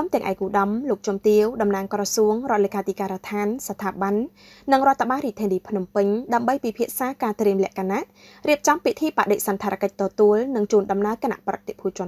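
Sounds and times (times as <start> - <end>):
person talking: 0.0 - 12.0.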